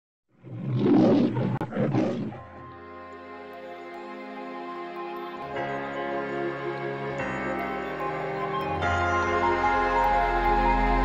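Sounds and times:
lion roaring: 0.4s - 2.6s.

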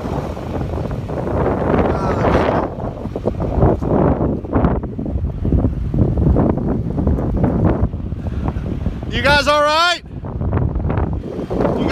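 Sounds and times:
gusty wind on microphone: 0.0s - 11.9s.

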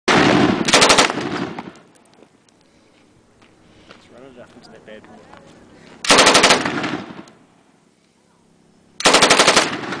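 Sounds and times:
machine gun firing bursts: 0.1s - 1.7s, 6.0s - 7.2s, 9.0s - 10.0s.

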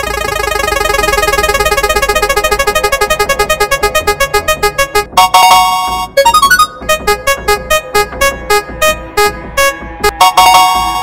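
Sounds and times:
synth keyboard notes ticking: 0.0s - 11.0s.

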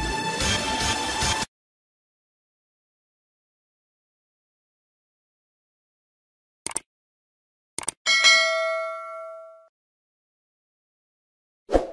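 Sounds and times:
bell-like notification ding: 8.1s - 9.7s.

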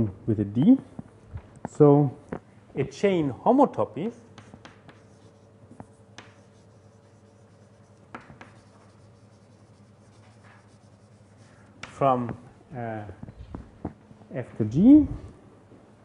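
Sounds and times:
faint room hum: 0.0s - 16.0s
writing scratches and taps on board: 4.3s - 11.0s.

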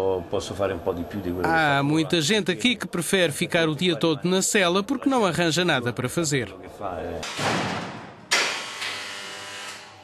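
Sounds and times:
heavy metal door slamming: 7.3s - 8.7s.

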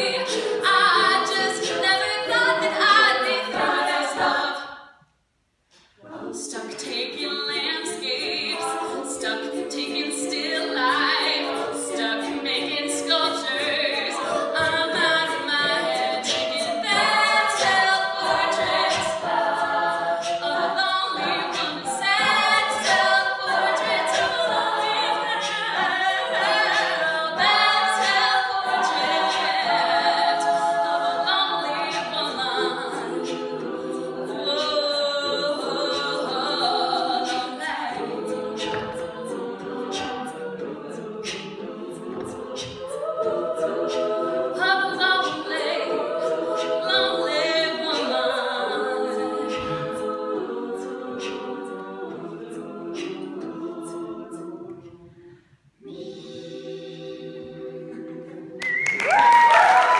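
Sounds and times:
women singing backing harmonies: 0.0s - 5.0s, 5.7s - 59.9s.

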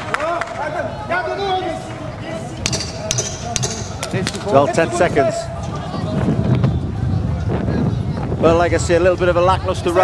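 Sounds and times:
crowd noise: 0.0s - 10.0s
sharp metallic knocks: 2.6s - 4.4s.

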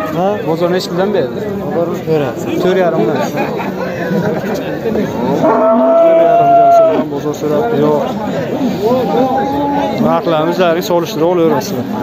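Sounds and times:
crowd chatter: 0.0s - 12.0s
cow mooing: 5.4s - 7.0s.

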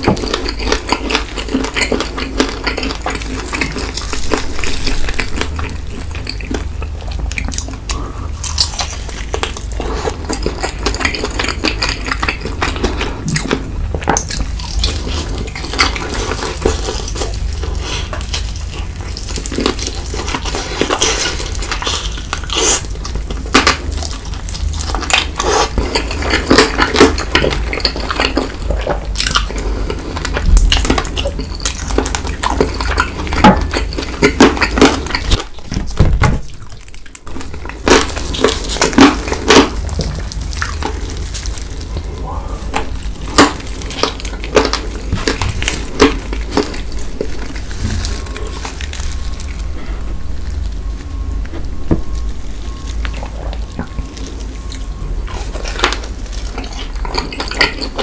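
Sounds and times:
chewing and crunching: 0.0s - 58.0s
steady low hum: 0.0s - 58.0s.

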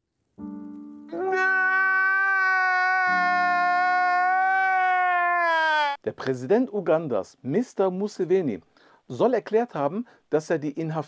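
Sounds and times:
man wailing: 1.1s - 6.0s.

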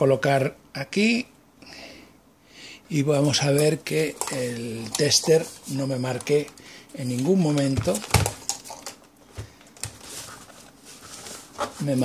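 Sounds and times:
handling clicks and knocks: 7.2s - 10.0s.

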